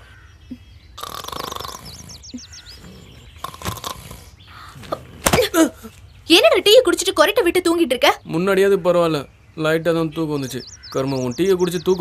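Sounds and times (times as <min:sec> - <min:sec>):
high chirping bird calls: 0:00.0 - 0:12.0.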